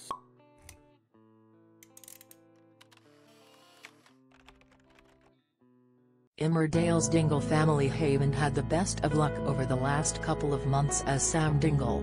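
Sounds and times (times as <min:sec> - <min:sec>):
background music with held chords: 0:06.8 - 0:12.0.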